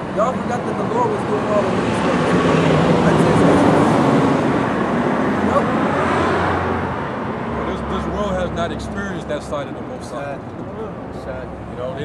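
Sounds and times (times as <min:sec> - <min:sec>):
vehicle passing by: 0:00.0 - 0:12.0.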